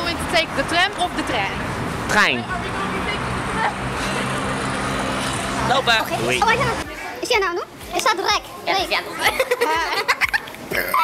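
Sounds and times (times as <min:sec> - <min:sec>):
road traffic noise: 0:00.0 - 0:11.0.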